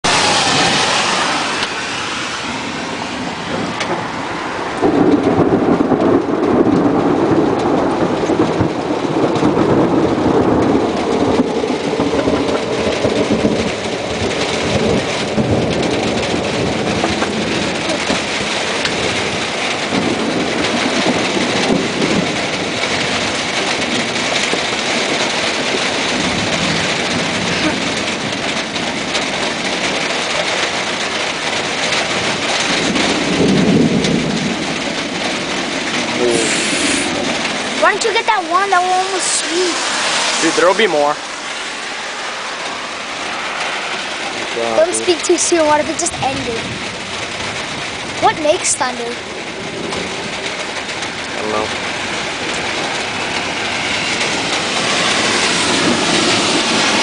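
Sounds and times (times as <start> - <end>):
steady rain: 0.0 - 57.0
thunder rumbling: 0.0 - 57.0.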